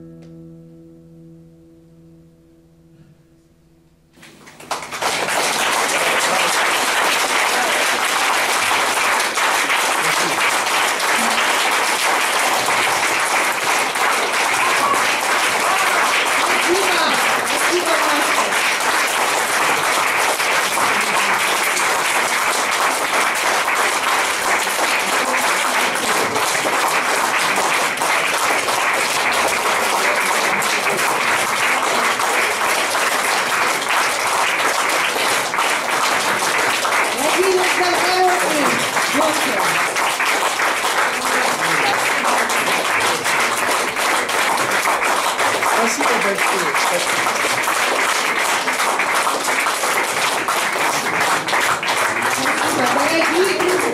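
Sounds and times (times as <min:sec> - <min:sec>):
audience applauding: 0:04.2 - 0:53.9
voices through clapping: 0:04.4 - 0:53.9.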